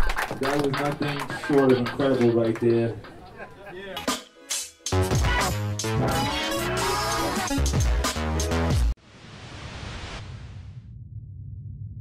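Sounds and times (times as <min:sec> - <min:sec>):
low rumble: 0:09.3 - 0:12.0.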